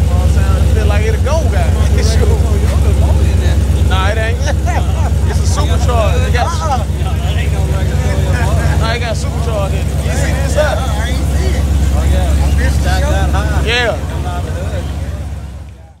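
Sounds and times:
engine low rumble: 0.0s - 16.0s
people talking: 0.0s - 16.0s.

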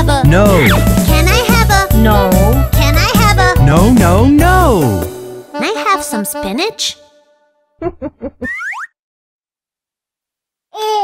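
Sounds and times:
children's song: 0.0s - 7.0s.

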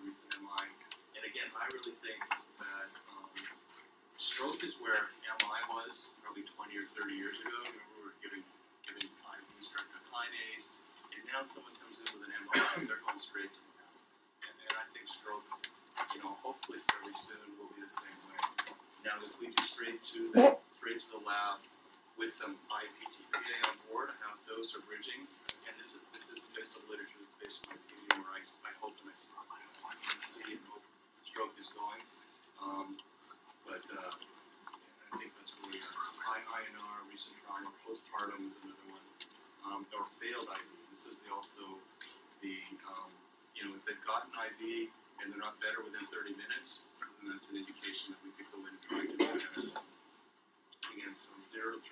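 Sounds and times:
man lecturing: 0.0s - 13.6s, 14.4s - 21.6s, 22.2s - 34.2s, 35.0s - 49.8s, 50.8s - 51.9s
indistinct talk: 0.0s - 49.9s, 50.8s - 51.9s
steady hiss: 0.0s - 51.9s.

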